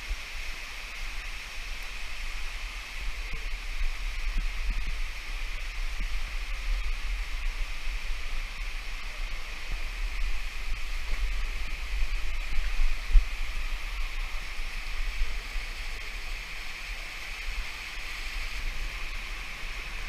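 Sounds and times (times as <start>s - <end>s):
low microphone rumble: 0.0s - 20.0s
stream water rushing over rocks: 0.0s - 20.0s.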